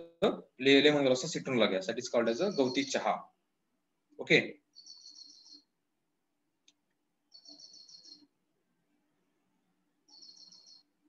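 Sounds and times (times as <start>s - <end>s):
faint bird trills: 7.3s - 8.3s, 10.1s - 11.0s.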